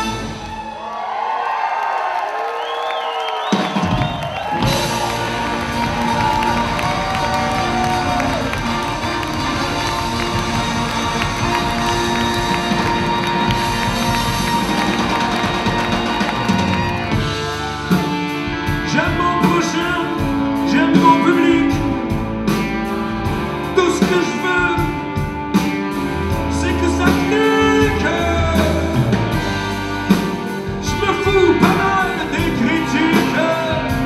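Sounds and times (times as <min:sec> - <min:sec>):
live rock band with horns: 0:00.0 - 0:00.8, 0:03.1 - 0:34.0
audience cheering: 0:00.0 - 0:19.8.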